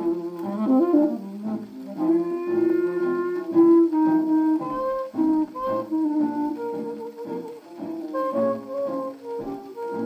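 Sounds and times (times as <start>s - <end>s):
jazz record on phonograph: 0.0s - 10.0s
wind instrument long note: 0.0s - 10.0s.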